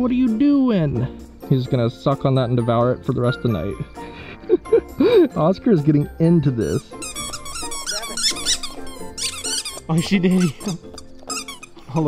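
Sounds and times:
dog toy squeaking: 6.7s - 12.0s.

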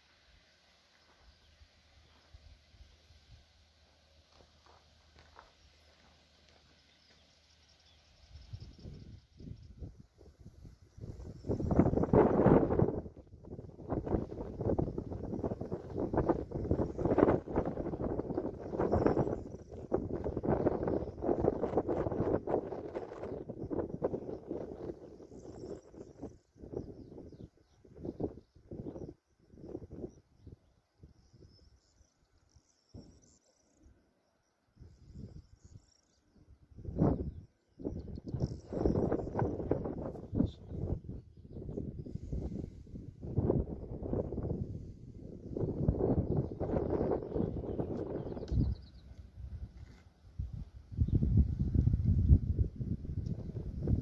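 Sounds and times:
faint bird chirps: 0.8s - 13.0s, 13.9s - 52.0s
wind gusting on microphone: 8.3s - 31.6s, 36.4s - 54.0s.

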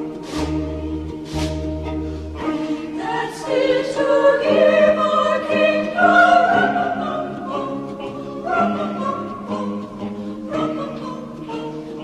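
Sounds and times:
choir singing sustained notes: 0.0s - 12.0s
orchestral accompaniment: 0.0s - 12.0s.

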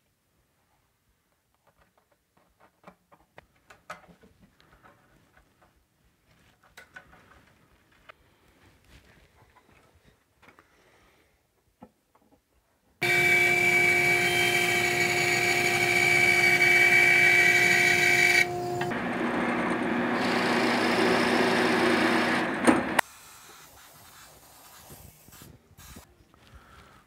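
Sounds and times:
drill press boring into wood: 13.0s - 23.0s.

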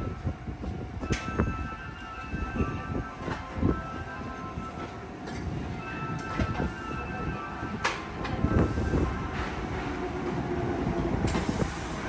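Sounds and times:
train rumbling on rails: 0.0s - 12.0s.

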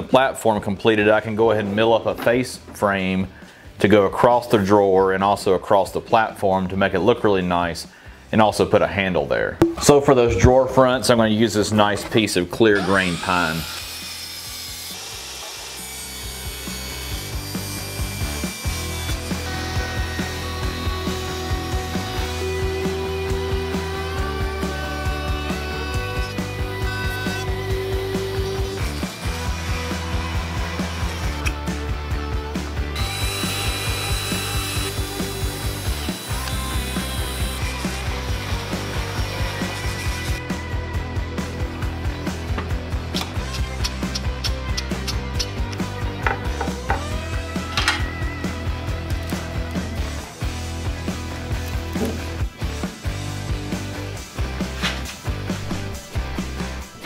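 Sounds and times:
background music with steady beat: 9.6s - 11.4s, 16.8s - 57.0s
table saw cutting wood: 12.7s - 23.8s, 24.6s - 31.6s, 32.9s - 40.4s.

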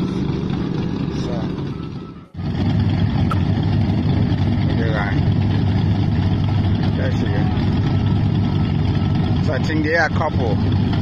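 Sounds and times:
motorcycle engines idling: 0.0s - 11.0s.

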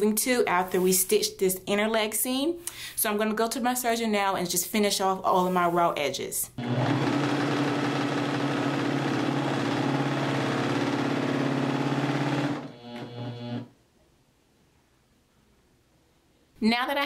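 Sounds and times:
overlock machine running: 6.6s - 13.7s.

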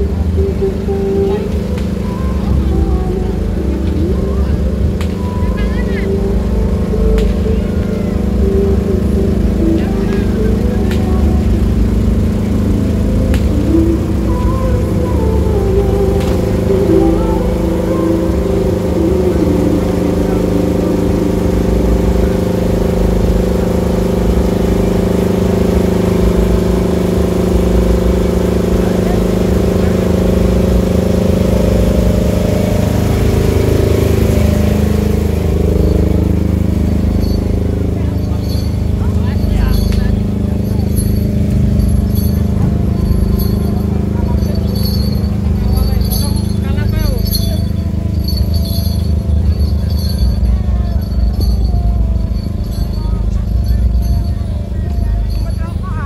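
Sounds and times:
deep bass from sound system: 0.0s - 56.0s
people's voices: 0.0s - 56.0s.

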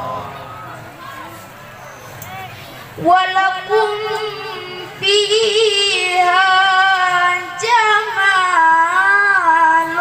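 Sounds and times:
boy reciting melodically: 3.0s - 10.0s.

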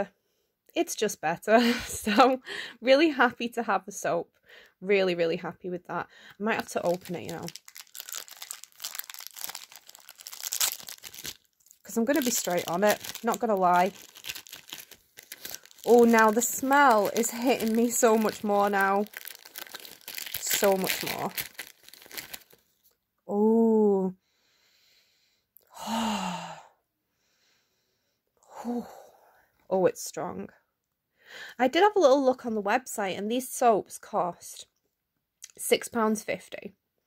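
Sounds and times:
paper packaging crinkling: 6.5s - 22.7s
woman sighing: 25.7s - 26.8s.

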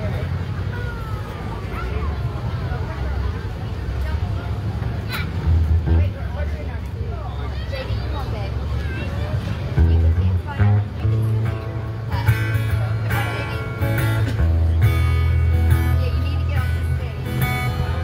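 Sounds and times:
people talking: 0.0s - 18.0s
amplified acoustic guitar: 4.9s - 6.7s, 9.0s - 18.0s.

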